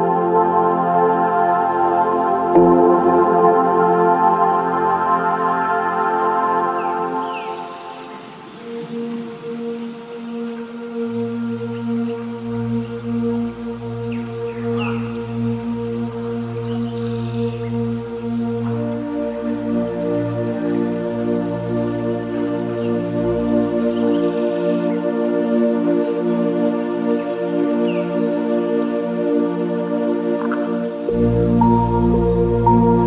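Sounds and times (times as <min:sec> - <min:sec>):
soft new-age music: 0:00.0 - 0:33.0
low bass note: 0:31.1 - 0:33.0.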